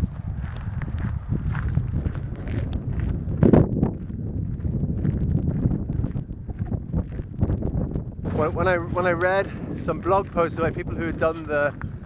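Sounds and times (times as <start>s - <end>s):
footsteps on gravel: 0.0s - 7.6s, 8.2s - 12.0s
wind buffeting microphone: 0.0s - 12.0s.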